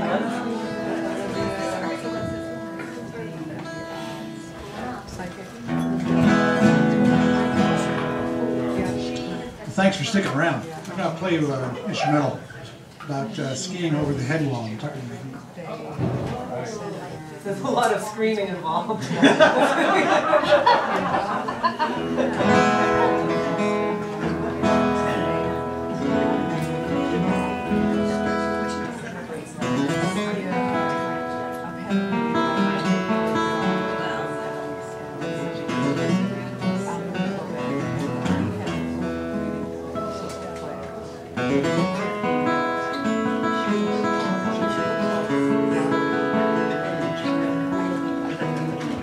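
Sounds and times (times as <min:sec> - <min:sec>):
acoustic guitar instrumental: 0:00.0 - 0:49.0
audience laughter: 0:19.0 - 0:24.4.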